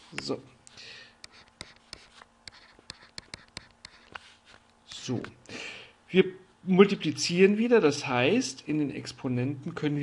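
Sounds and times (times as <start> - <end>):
stylus ticking and scratching on screen: 1.2 - 5.1.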